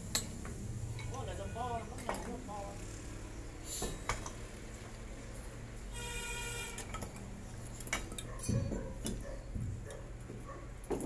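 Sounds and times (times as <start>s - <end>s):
wood and tools clinking on concrete: 0.1s - 2.4s, 6.6s - 11.0s.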